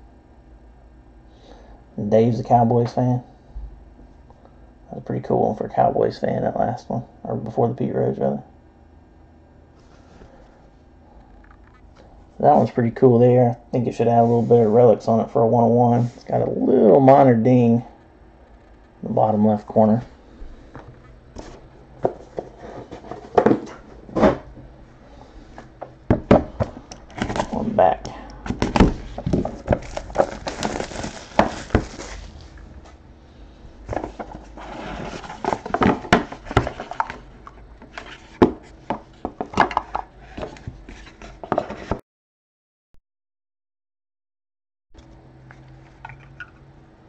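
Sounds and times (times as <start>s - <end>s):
cards rustling: 28.4s - 32.9s.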